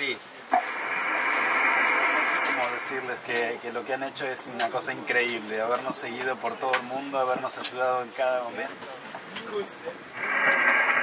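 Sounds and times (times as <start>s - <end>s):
radio static hiss: 0.0s - 4.6s, 9.9s - 11.0s.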